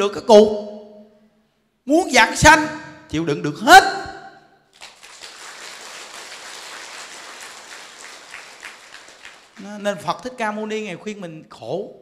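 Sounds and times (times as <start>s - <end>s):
audience applauding: 4.8s - 9.7s.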